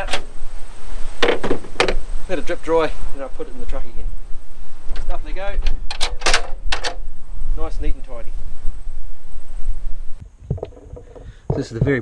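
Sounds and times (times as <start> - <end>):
sharp knocks: 10.4 - 12.0.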